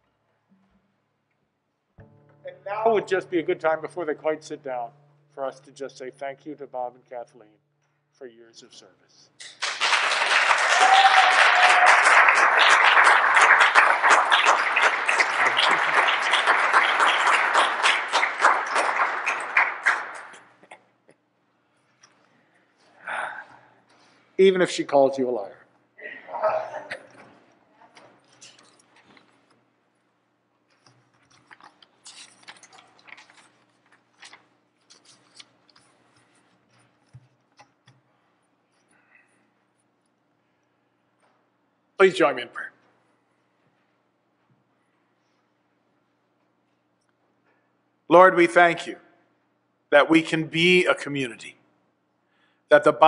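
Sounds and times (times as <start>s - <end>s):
faint steady hum: 0.0s - 53.0s
congregation applauding: 9.4s - 20.6s
papers rustling: 30.7s - 37.6s.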